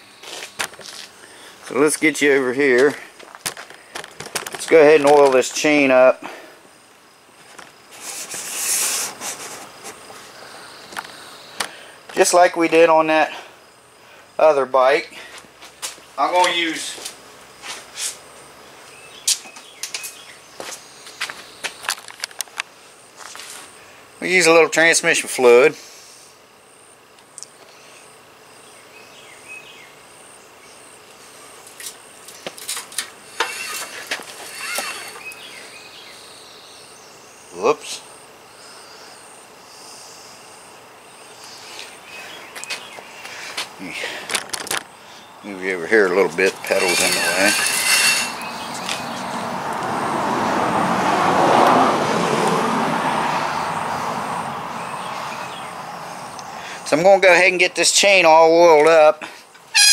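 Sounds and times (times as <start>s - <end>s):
bicycle chain clicking and ticking: 32.7s - 35.2s
vehicle passing: 46.5s - 56.6s.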